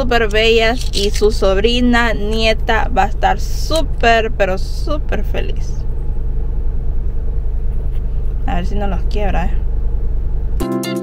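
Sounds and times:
car rumble from inside cabin: 0.0s - 10.6s.

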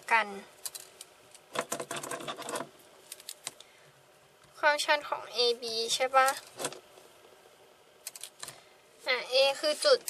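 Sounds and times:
woman speaking: 0.0s - 0.5s, 4.6s - 6.4s, 9.0s - 10.0s.

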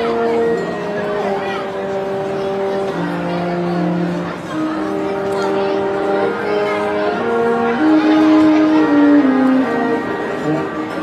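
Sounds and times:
marching band playing chords: 0.0s - 11.0s.

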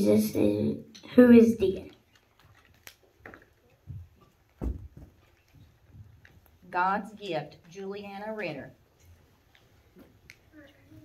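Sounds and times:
footsteps of child in boots: 3.1s - 6.7s.

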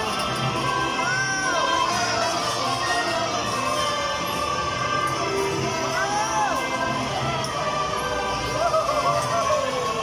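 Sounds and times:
carousel ride music: 0.0s - 10.0s.

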